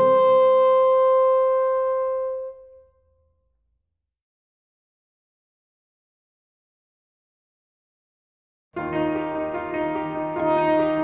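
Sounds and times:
held horn tone: 0:00.0 - 0:02.8, 0:10.2 - 0:11.0.

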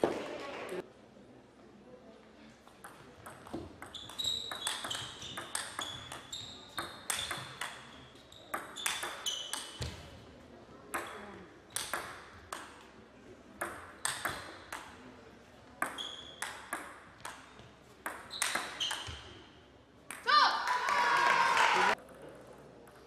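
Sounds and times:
table tennis ball striking: 0:02.8 - 0:10.0, 0:10.9 - 0:12.8, 0:13.6 - 0:15.0, 0:15.8 - 0:19.2.

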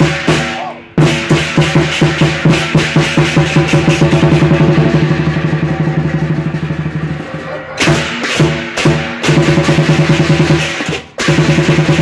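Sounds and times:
barrel drum beaten with sticks: 0:00.0 - 0:12.0
crashing hand cymbals: 0:00.0 - 0:12.0.

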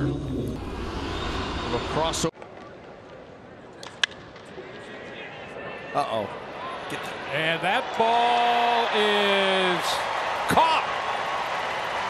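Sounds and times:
quiet stadium ambience: 0:00.0 - 0:12.0
ballpark crowd and broadcast noise: 0:00.6 - 0:12.0.

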